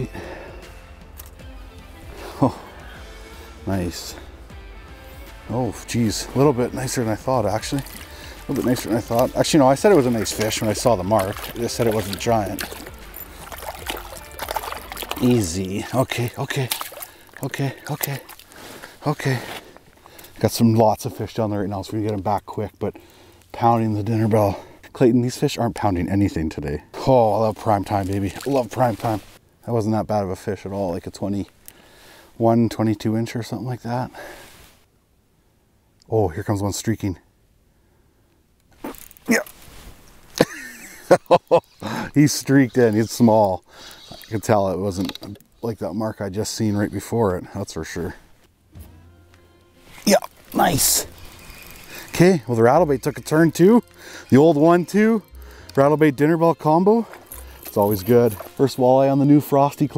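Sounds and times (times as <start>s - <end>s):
man laughing: 2.2s - 2.7s, 40.4s - 42.2s
water splashing and trickling: 5.4s - 24.8s, 27.0s - 29.4s, 49.8s - 59.9s
small irregular splashes: 6.8s - 20.4s.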